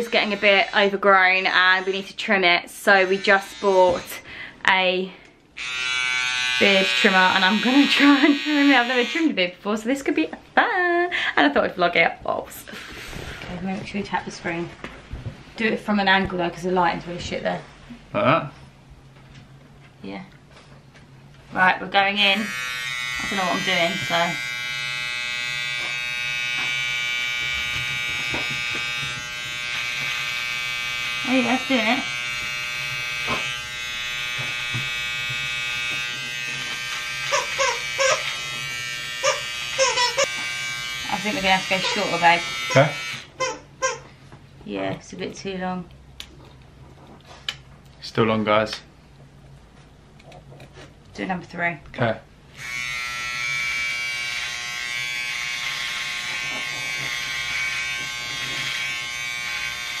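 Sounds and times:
beard trimmer buzzing: 0.0s - 2.1s, 2.8s - 4.2s, 5.6s - 9.4s, 12.7s - 13.4s, 22.0s - 44.0s, 52.5s - 60.0s.

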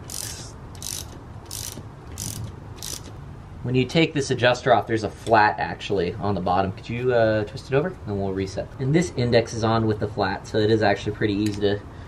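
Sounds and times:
ratchet wrench clicking: 0.0s - 3.2s.

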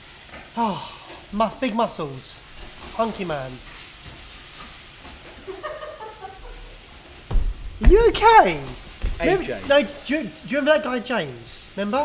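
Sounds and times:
food sizzling in a pan: 0.0s - 12.0s.

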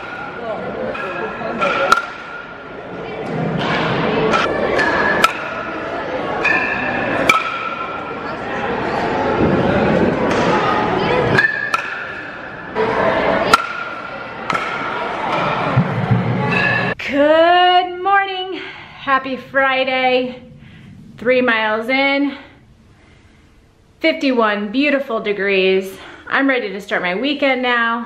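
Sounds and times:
bat cracking baseballs: 0.0s - 8.2s, 9.4s - 16.7s
murmur of voices in a hall: 0.0s - 17.0s
woman speaking: 17.0s - 20.5s, 21.2s - 22.6s, 24.0s - 28.0s.

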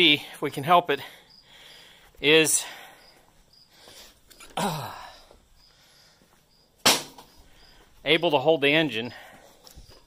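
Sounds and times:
sharp knock: 6.8s - 7.3s.

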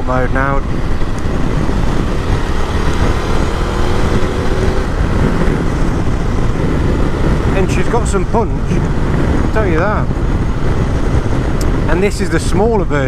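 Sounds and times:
motorcycle engine accelerating: 0.0s - 12.5s
wind and road noise: 0.0s - 13.0s.

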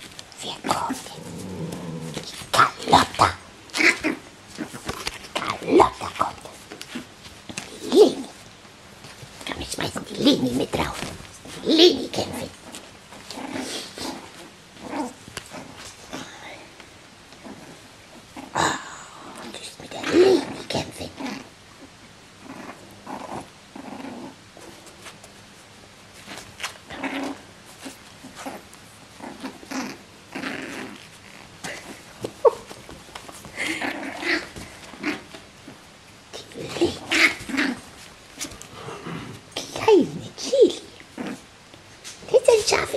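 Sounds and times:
puppies growling: 0.1s - 8.5s, 10.0s - 25.2s, 26.1s - 41.8s.

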